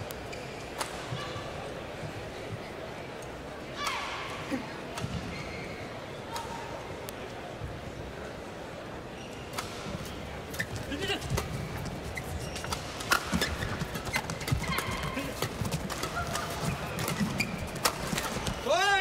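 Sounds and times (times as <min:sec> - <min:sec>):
shoe squeaks on court: 0:00.2 - 0:00.8, 0:10.5 - 0:15.3, 0:16.1 - 0:18.6
crowd murmur: 0:00.7 - 0:19.0.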